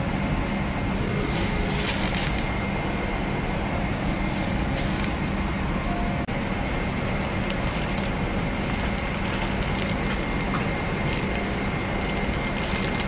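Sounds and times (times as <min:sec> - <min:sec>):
cabin ventilation hum: 0:00.0 - 0:13.0
fabric and plastic rustling: 0:01.0 - 0:02.6, 0:04.0 - 0:05.4, 0:07.4 - 0:13.0.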